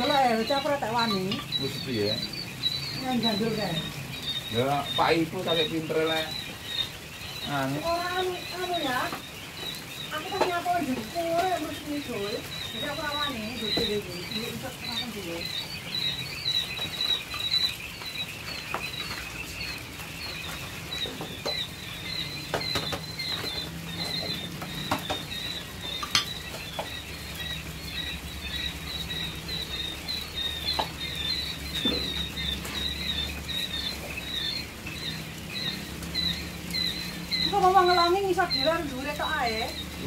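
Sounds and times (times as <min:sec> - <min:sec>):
chicks peeping: 0:00.0 - 0:40.0.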